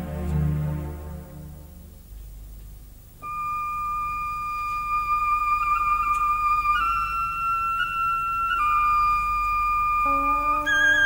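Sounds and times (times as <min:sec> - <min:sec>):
flute holding long note: 0:03.2 - 0:11.0.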